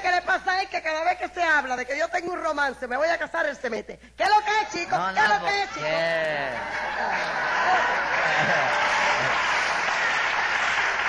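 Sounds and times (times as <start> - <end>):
studio audience applauding: 5.2 - 11.0.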